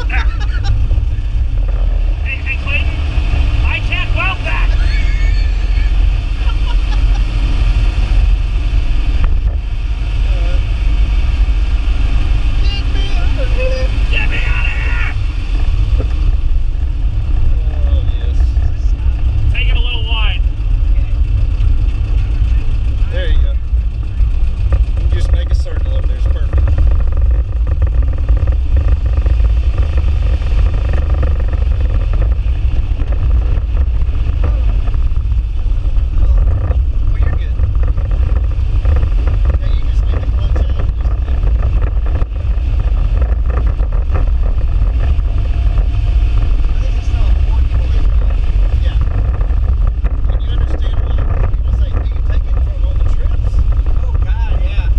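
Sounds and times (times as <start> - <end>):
car engine running: 0.0 - 54.9
road noise: 0.0 - 54.9.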